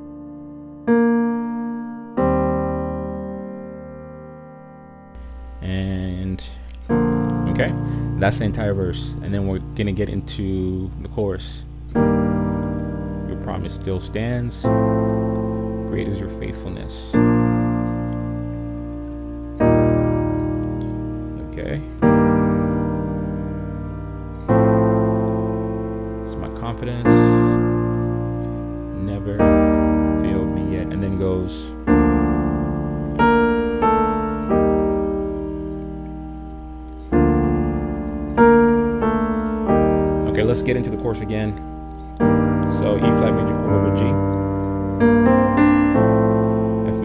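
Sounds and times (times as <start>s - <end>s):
piano chords ringing: 0.0s - 47.0s.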